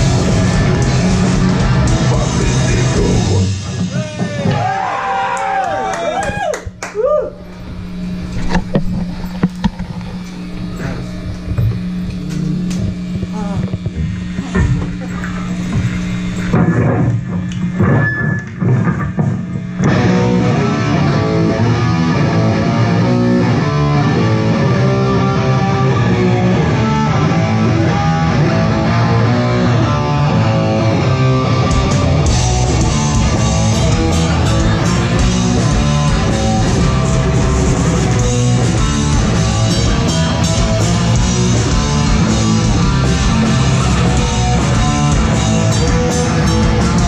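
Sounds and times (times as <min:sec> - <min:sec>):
drum and guitar hits: 0:00.0 - 0:05.2, 0:15.7 - 0:25.9, 0:26.5 - 0:47.0
rock band playing: 0:00.0 - 0:05.9, 0:15.7 - 0:47.0
held low note: 0:07.0 - 0:18.1.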